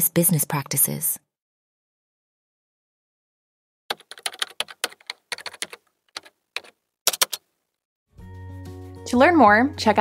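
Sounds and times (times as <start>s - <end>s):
computer keyboard typing: 3.9s - 7.4s.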